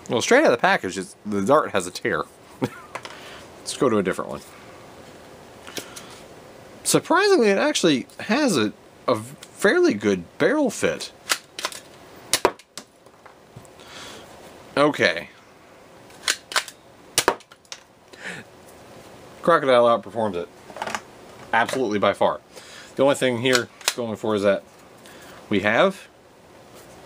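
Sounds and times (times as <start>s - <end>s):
man talking: 0.0s - 2.3s, 3.6s - 4.6s, 6.8s - 11.2s, 14.7s - 15.4s, 19.4s - 20.5s, 21.5s - 22.4s, 23.0s - 24.7s, 25.5s - 26.1s.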